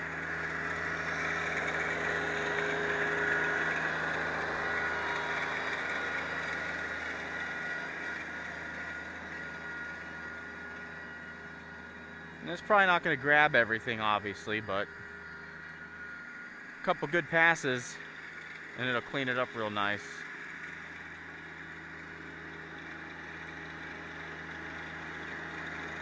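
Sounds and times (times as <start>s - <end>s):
tractor diesel engine running: 0.0s - 26.0s.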